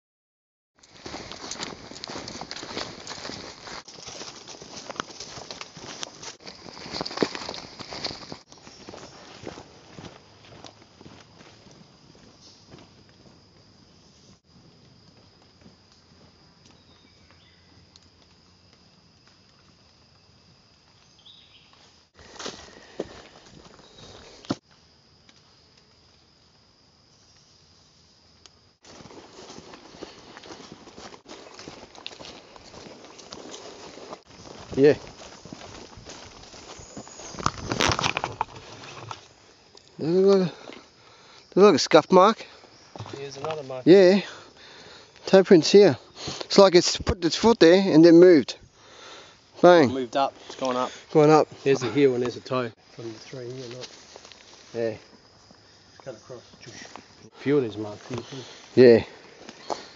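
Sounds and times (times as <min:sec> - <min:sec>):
footsteps crunching on dry leaves: 0:00.8 - 0:13.5, 0:21.3 - 0:24.6, 0:28.8 - 0:39.4, 0:52.8 - 0:55.6.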